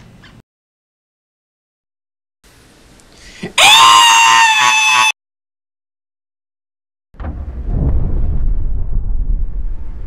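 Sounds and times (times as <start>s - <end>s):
man screaming: 3.6s - 5.2s.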